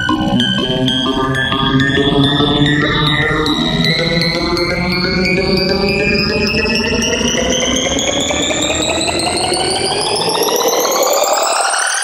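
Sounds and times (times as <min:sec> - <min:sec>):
electronic bass and beat: 0:00.0 - 0:11.2
synth riser: 0:00.0 - 0:12.0.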